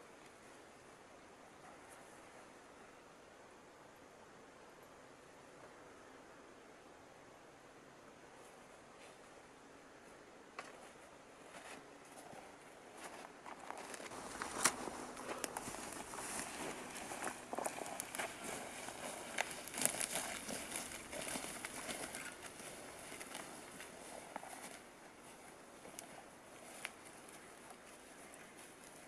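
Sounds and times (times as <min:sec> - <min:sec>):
footsteps crunching through snow: 0:10.6 - 0:29.0.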